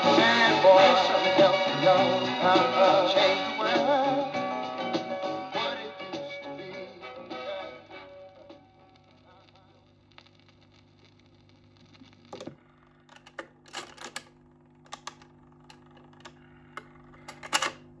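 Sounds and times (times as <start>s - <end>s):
faint motor hum: 9.8s - 18.0s
record player mechanism clicking: 12.3s - 14.3s, 14.9s - 17.8s.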